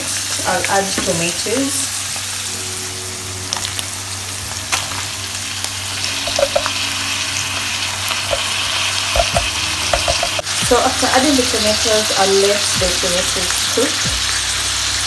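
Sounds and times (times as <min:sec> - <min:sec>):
meat sizzling in a pan: 0:00.0 - 0:15.0
wooden board and spoon knocks: 0:09.2 - 0:10.4.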